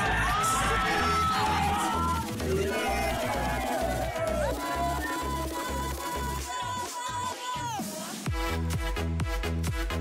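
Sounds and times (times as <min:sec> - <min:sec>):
electronic music with bass beat: 0:00.0 - 0:10.0.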